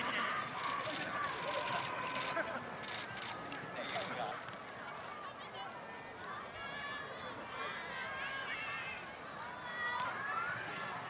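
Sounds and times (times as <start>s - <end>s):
people chattering and calling out: 0.0s - 11.0s.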